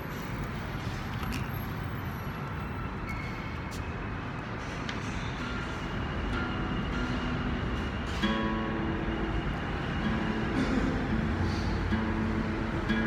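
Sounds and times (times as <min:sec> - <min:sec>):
plucked guitar notes: 0:05.5 - 0:13.0.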